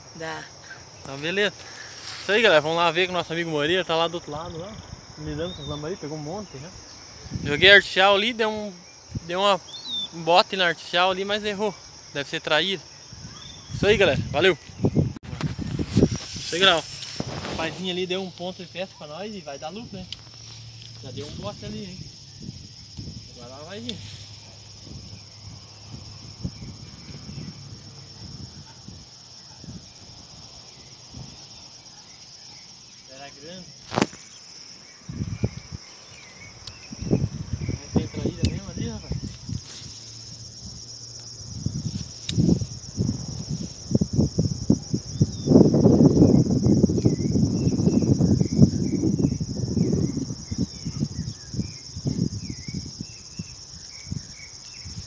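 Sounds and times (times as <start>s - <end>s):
insects chirring: 0.0s - 55.0s
rustling and buffeting noise: 13.2s - 29.1s, 33.7s - 55.0s.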